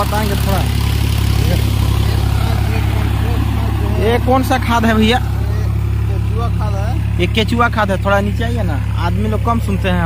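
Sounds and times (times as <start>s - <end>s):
tractor diesel engine droning: 0.0s - 10.0s.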